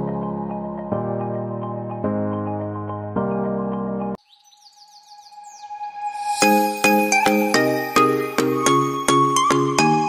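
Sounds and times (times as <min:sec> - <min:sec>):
background music: 0:00.0 - 0:04.2, 0:05.4 - 0:10.0
descending bird-like chirps: 0:04.2 - 0:06.6.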